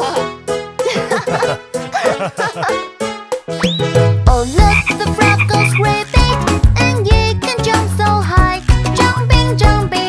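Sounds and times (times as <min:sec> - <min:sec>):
children's song music: 0:00.0 - 0:10.0
cartoon frog croaking: 0:04.6 - 0:06.1.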